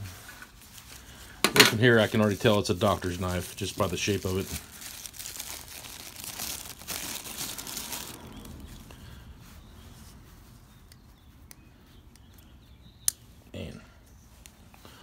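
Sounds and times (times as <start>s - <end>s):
paper wrapping crinkling: 0.0s - 10.6s.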